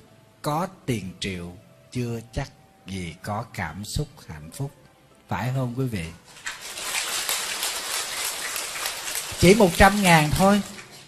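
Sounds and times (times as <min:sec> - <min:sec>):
audience applauding: 0:06.5 - 0:11.0.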